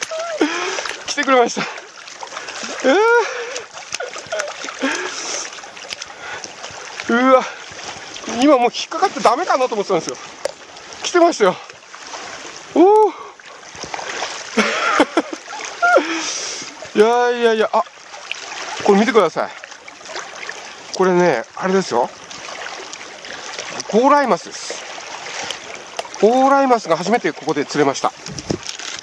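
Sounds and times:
man exclaiming: 0:00.0 - 0:01.7, 0:02.8 - 0:03.4, 0:07.1 - 0:07.6, 0:12.8 - 0:13.3
fish splashing at surface: 0:00.0 - 0:11.0
stream water rushing: 0:00.0 - 0:29.0.

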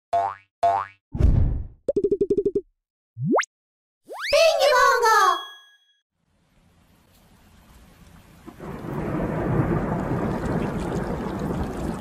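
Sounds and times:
quick identical blips: 0:03.2 - 0:03.5
whistle sliding upward: 0:04.1 - 0:04.6
cartoon tones bending up: 0:04.1 - 0:05.8.

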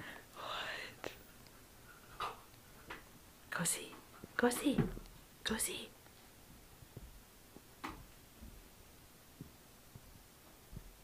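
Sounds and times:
person whispering: 0:00.4 - 0:01.2, 0:03.6 - 0:04.0, 0:05.5 - 0:06.0.

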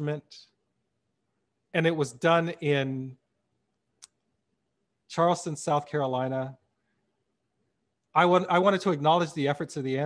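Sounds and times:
man speaking: 0:00.0 - 0:00.6, 0:01.6 - 0:03.3, 0:05.0 - 0:06.7, 0:08.1 - 0:10.0.

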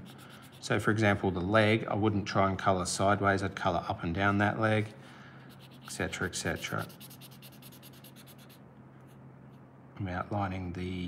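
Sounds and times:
felt-tip pen scribbling on paper: 0:00.0 - 0:01.0, 0:05.5 - 0:08.6.

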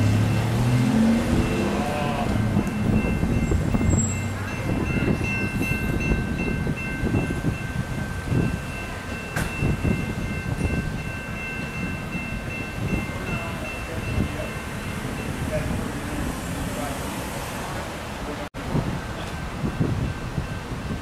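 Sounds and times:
crossing warning bell ringing: 0:00.0 - 0:16.9, 0:19.3 - 0:21.0
freight train rumbling: 0:00.0 - 0:21.0.

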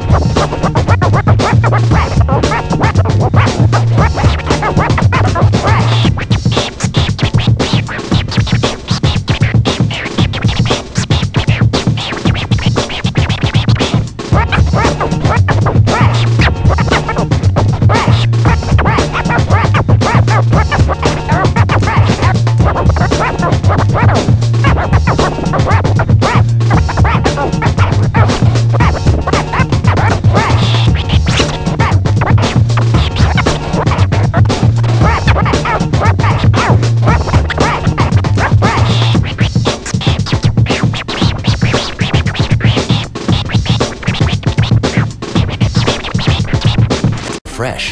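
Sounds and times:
beat with heavy bass: 0:00.0 - 0:47.9
vinyl record scratching: 0:00.0 - 0:47.9.

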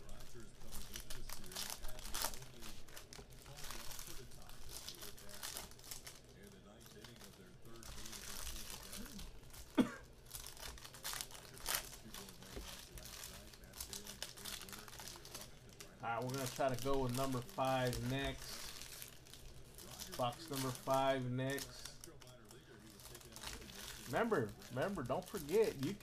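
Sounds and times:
foil wrappers crinkling and tearing: 0:00.0 - 0:26.0.

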